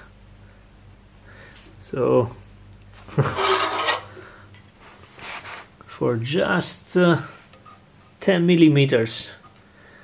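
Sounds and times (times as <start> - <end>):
faint steady hum: 0.0 - 10.0
steel block scraping in vise: 3.2 - 4.2.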